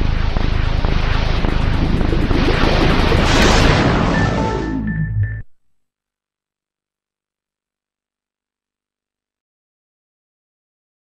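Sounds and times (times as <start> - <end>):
loud intro music: 0.0 - 5.6
rising whoosh: 0.6 - 5.6.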